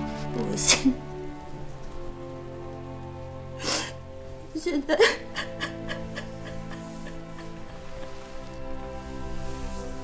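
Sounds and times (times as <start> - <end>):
faint grainy hiss: 0.0 - 10.0
soft music with sustained chords: 0.0 - 10.0.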